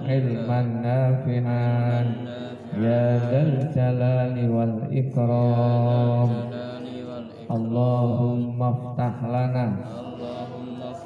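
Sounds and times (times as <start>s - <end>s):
man chanting a prayer: 0.0s - 11.0s.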